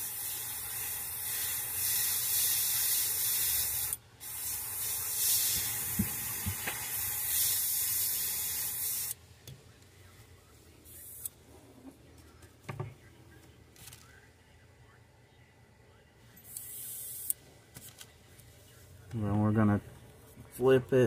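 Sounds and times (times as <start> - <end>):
airbrush spraying paint: 0.0 - 9.2, 16.5 - 17.4.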